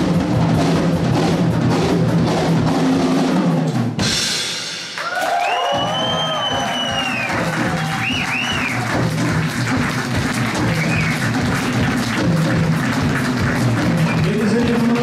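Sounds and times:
rock drum kit playing: 0.0s - 15.0s
crowd whistling: 5.0s - 9.1s, 10.6s - 11.5s, 14.0s - 14.6s
audience applause: 5.0s - 15.0s.

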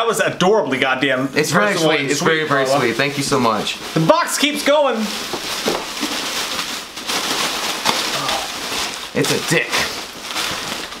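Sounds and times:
plastic and packing material rustling: 1.6s - 11.0s
sharp plastic crackles: 3.1s - 11.0s.

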